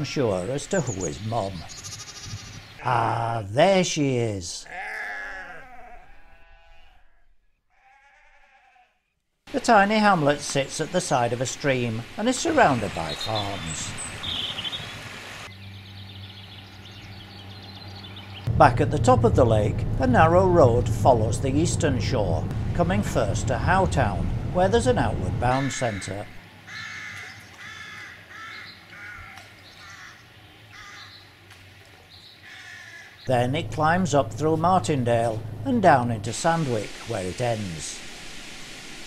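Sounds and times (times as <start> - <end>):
birds chirping: 0.0 - 3.9, 9.6 - 31.4, 32.0 - 36.8
crow cawing: 4.7 - 7.1, 7.7 - 8.9, 26.7 - 31.2, 32.4 - 33.2
stream rushing over stones: 9.5 - 15.5, 36.4 - 39.0
steady low hum: 15.5 - 26.4, 33.3 - 38.2.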